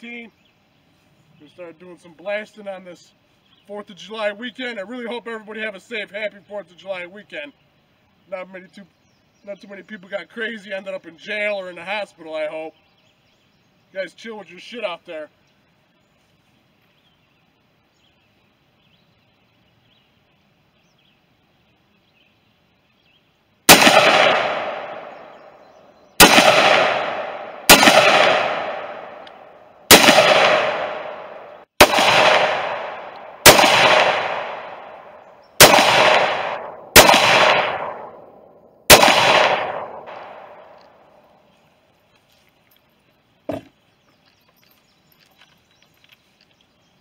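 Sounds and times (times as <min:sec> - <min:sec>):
rifle shots echoing: 0:23.7 - 0:41.2.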